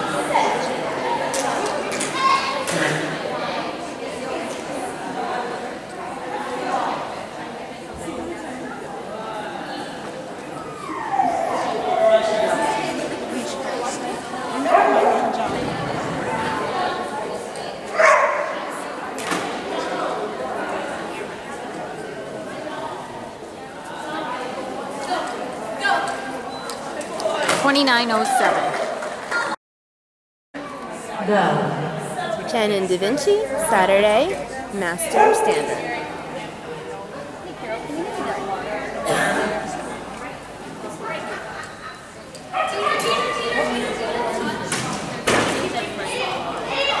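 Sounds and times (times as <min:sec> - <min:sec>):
dog barking: 0:14.7 - 0:15.3, 0:18.0 - 0:18.6, 0:35.2 - 0:35.8
dog barking in high yips: 0:18.0 - 0:18.6.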